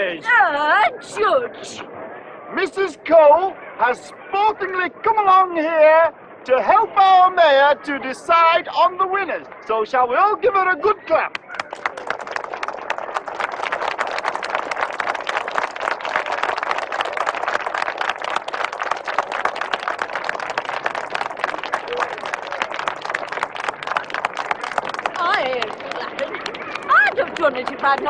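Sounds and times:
crowd applauding: 11.3 - 28.0.

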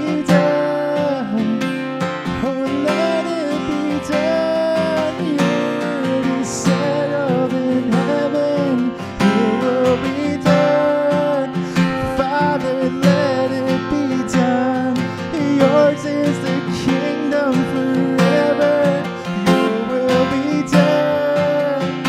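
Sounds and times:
acoustic guitar strumming: 0.0 - 22.0
man singing: 0.0 - 22.0.

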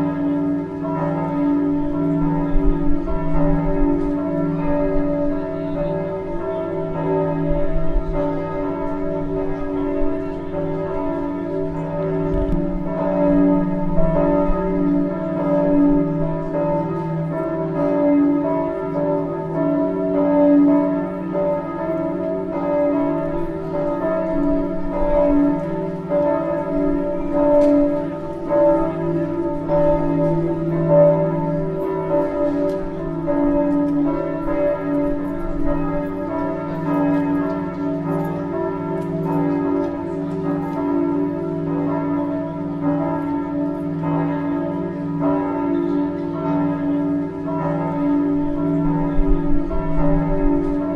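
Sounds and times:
church bells ringing: 0.0 - 50.9.

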